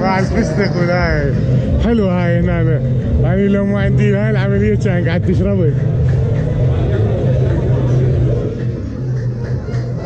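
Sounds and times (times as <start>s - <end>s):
man's voice in drawn-out phrases: 0.0s - 4.8s
steady low hum: 0.0s - 10.0s.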